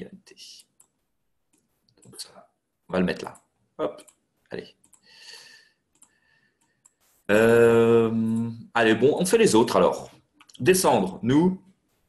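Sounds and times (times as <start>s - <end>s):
computer mouse clicks: 0.6s - 2.2s, 4.8s - 5.1s, 5.9s - 7.1s.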